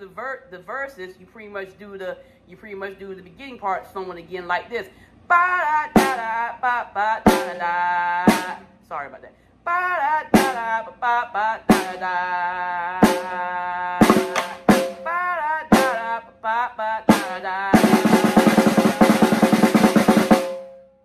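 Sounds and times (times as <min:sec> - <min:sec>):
person singing: 0:05.3 - 0:08.8, 0:09.7 - 0:20.4
snare drum hits and rolls: 0:14.0 - 0:15.1, 0:17.8 - 0:20.7.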